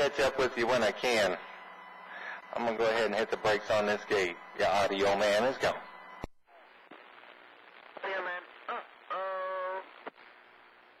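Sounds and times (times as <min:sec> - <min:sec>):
radio static hiss: 0:00.0 - 0:11.0
voice over radio: 0:02.5 - 0:05.8, 0:08.0 - 0:10.0
radio transmission click: 0:02.5 - 0:10.4.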